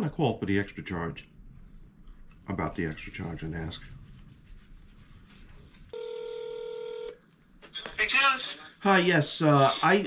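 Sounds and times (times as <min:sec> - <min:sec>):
telephone ringback tone: 0:05.9 - 0:07.2
person answering phone: 0:06.0 - 0:07.2.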